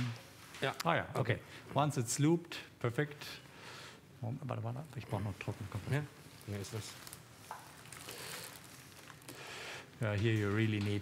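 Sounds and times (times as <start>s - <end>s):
room hiss: 0.0s - 11.0s
faint handling noise: 5.0s - 9.4s, 10.0s - 11.0s.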